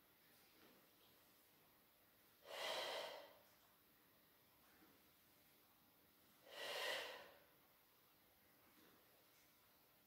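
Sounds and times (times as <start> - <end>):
woman exerting breath: 2.4 - 3.4, 6.5 - 7.4.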